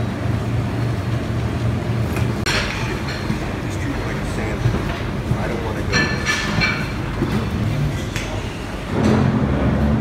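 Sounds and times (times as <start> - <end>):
crockery clinking: 5.8 - 8.4.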